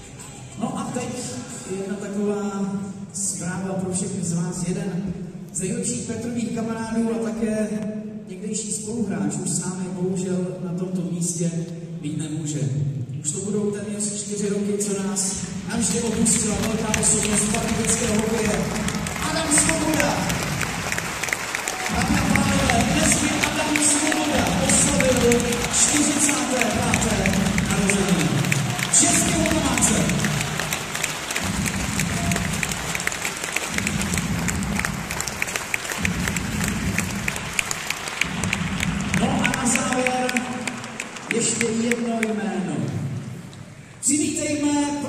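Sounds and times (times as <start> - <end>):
voice over loudspeakers: 0.0 - 20.7, 21.8 - 30.8, 38.2 - 43.4
crowd applauding: 15.7 - 42.7
music over loudspeakers: 21.9 - 30.7, 31.4 - 37.6.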